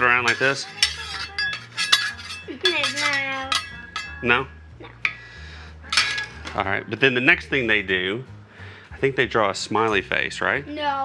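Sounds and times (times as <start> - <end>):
metal spatulas clinking: 0.0 - 5.3, 5.9 - 7.3.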